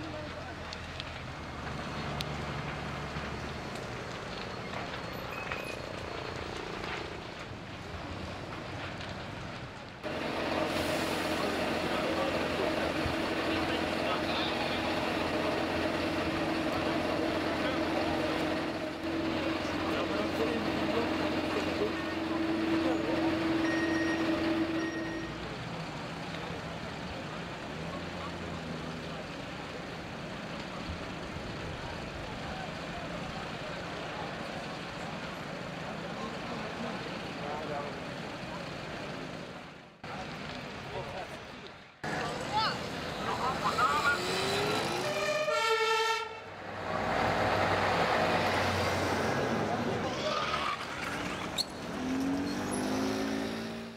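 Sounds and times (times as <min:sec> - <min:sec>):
fire engine pump running: 0:00.0 - 0:50.2.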